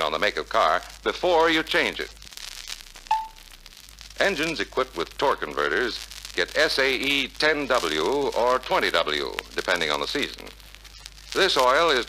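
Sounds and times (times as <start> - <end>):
faint hiss and crackle: 0.0 - 12.0
short clear beep: 3.1 - 3.4.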